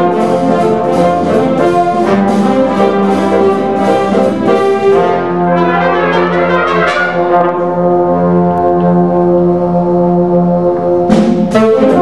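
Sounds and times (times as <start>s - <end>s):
big band playing swing: 0.0s - 12.0s.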